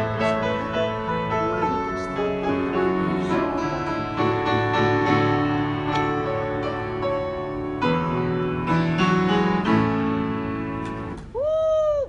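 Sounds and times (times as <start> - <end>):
piano chords: 0.0 - 11.4.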